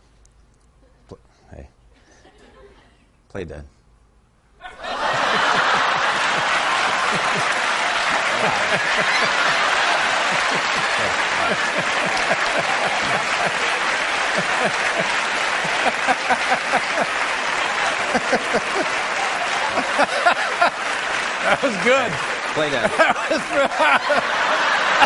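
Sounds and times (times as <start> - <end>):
studio audience applauding: 4.8 - 25.0.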